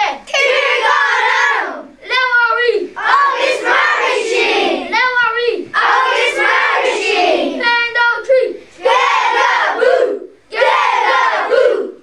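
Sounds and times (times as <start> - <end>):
group shouting in unison: 8.9 - 12.0.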